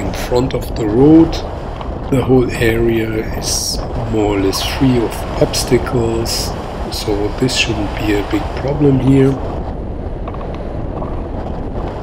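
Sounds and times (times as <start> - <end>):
wind rushing over microphone: 0.0 - 12.0.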